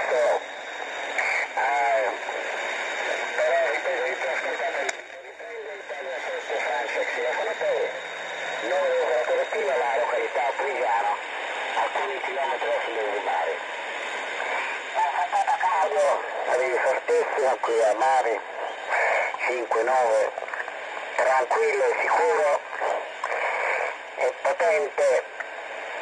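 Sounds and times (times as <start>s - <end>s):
thin narrow radio voice: 0.0s - 0.4s, 1.2s - 2.3s, 3.3s - 7.9s, 8.6s - 11.2s, 11.8s - 13.6s, 15.0s - 20.4s, 21.2s - 25.3s
steady radio band hiss: 0.0s - 26.0s.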